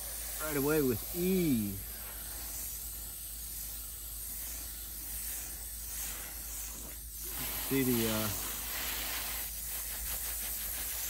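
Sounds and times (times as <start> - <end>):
hose water spraying on metal fins: 0.0 - 11.0.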